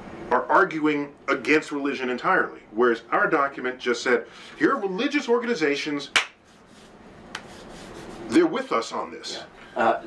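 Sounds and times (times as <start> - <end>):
room hiss: 0.0 - 10.0
sharp rubbing brush: 6.4 - 8.4.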